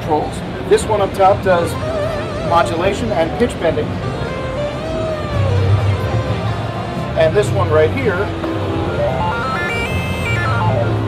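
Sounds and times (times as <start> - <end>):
synthesizer fast arpeggio: 8.6 - 11.0
held low synth note: 8.8 - 11.0.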